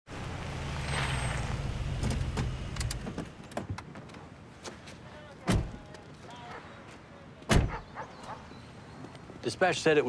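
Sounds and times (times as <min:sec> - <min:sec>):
car engine rumbling: 0:00.1 - 0:03.4.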